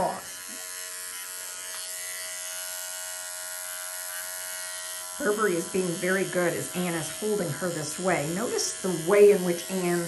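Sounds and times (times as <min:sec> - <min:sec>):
electric pet clipper buzzing: 0:00.0 - 0:10.0.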